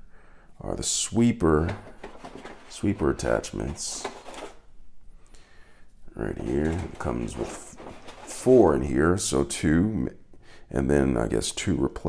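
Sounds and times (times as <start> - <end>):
rustling and scraping of brushes: 1.2 - 4.7, 6.0 - 9.0.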